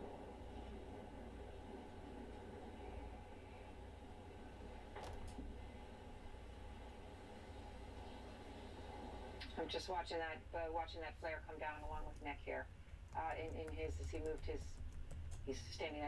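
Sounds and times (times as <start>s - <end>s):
faint room hum and hiss: 0.0s - 16.0s.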